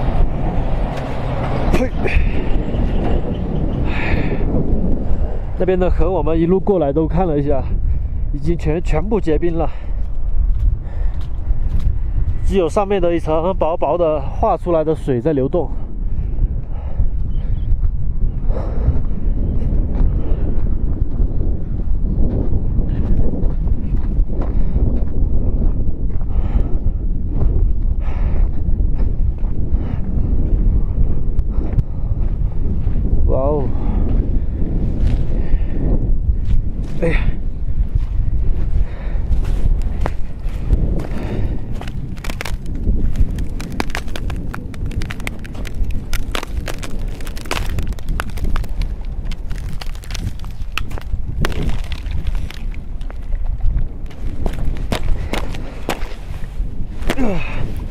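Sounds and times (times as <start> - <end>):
wind buffeting microphone: 0.0 - 57.9
footsteps crunching on ice and gravel: 10.0 - 12.6, 36.4 - 57.9.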